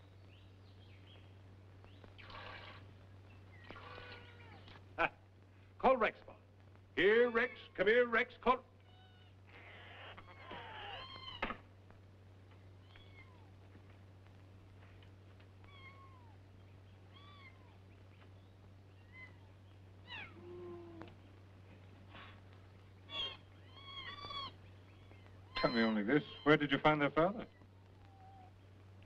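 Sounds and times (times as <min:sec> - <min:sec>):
rustle: 0:00.0 - 0:07.8, 0:08.7 - 0:29.0
low steady hum: 0:00.0 - 0:29.0
kittens mewing: 0:03.6 - 0:04.8, 0:08.9 - 0:11.5, 0:23.1 - 0:26.6.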